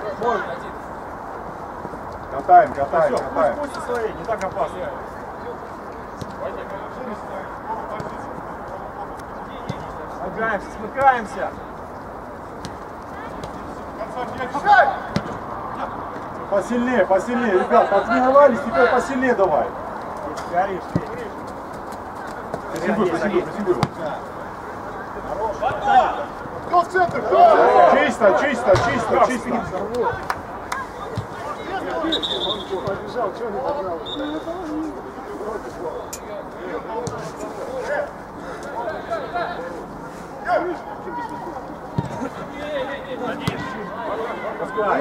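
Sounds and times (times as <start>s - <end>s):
men calling and chattering: 0.0s - 45.0s
players shouting: 13.1s - 21.5s, 22.1s - 34.8s, 40.3s - 45.0s
football being kicked: 42.0s - 42.2s, 43.4s - 43.7s.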